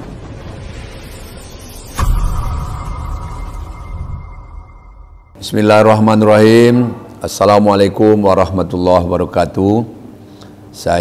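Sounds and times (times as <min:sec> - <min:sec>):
deep boom hit: 0:00.0 - 0:05.4
rumbling swell: 0:00.0 - 0:05.6
held ringing tone: 0:01.8 - 0:05.4.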